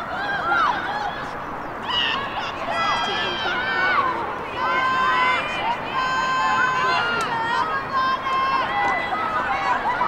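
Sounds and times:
women shouting outdoors: 0:00.0 - 0:10.0.

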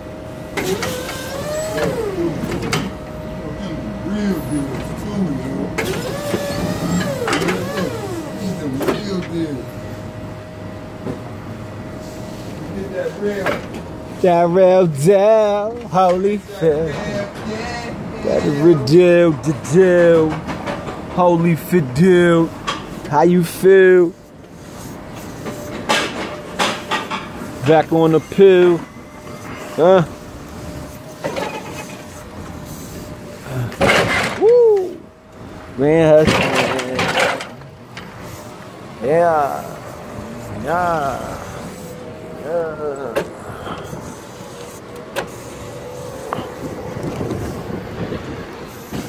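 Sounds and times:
forklift running: 0:00.0 - 0:49.0.

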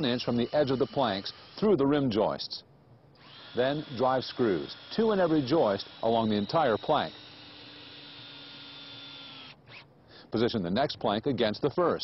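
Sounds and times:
cordless drill motor whine: 0:00.0 - 0:02.1, 0:03.2 - 0:09.9.

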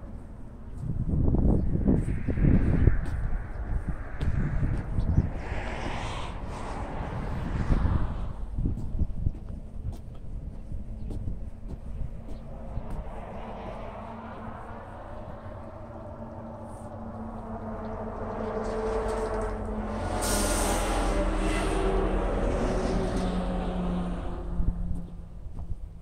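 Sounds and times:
vehicle passing: 0:00.2 - 0:26.0.

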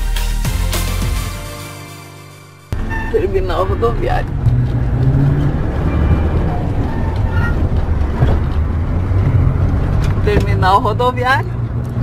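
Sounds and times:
engine and road rumble: 0:02.6 - 0:12.0.

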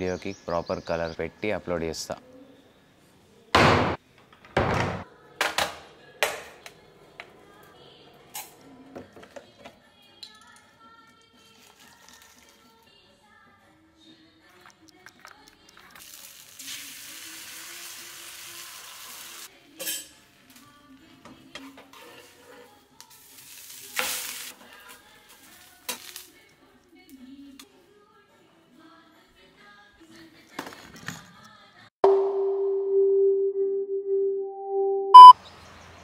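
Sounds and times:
batter sizzling in frying pan: 0:15.9 - 0:19.5, 0:23.0 - 0:26.4
electronic tones: 0:32.0 - 0:35.4
loud electronic beep: 0:32.0 - 0:35.4.

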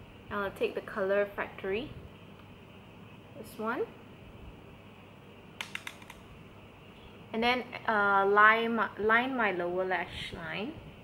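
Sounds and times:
makeup brush tapping palette: 0:05.6 - 0:06.2.

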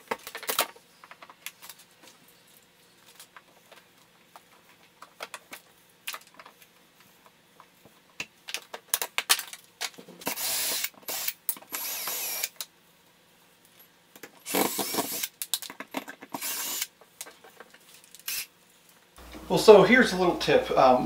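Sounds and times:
cordless drill running: 0:10.3 - 0:12.6, 0:14.5 - 0:15.3, 0:16.4 - 0:16.9.

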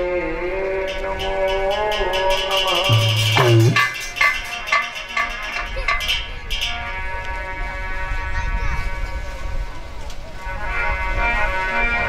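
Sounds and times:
percussion strokes: 0:00.9 - 0:07.4.

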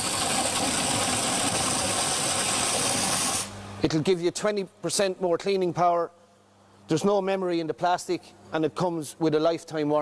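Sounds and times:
hose nozzle spraying water: 0:00.0 - 0:03.5.

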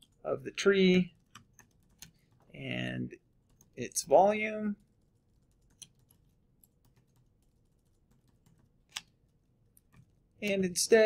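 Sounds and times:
faint typing on keyboard: 0:00.0 - 0:02.6, 0:03.4 - 0:10.7.

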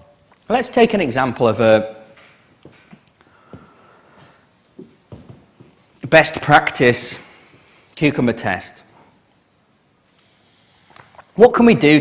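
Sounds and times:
soft footsteps on a stage: 0:02.2 - 0:05.9.

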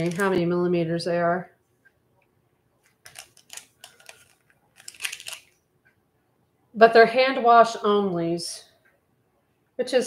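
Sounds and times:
button pack crinkling and clicking: 0:00.0 - 0:00.4, 0:02.9 - 0:05.6.

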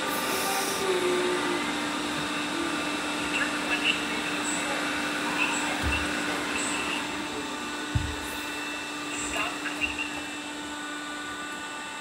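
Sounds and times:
robot vacuum cleaner whirring: 0:00.0 - 0:12.0.

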